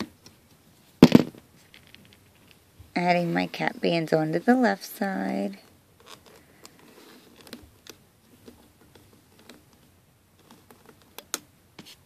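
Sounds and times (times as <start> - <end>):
rubber bands rubbing: 5.9 - 12.0.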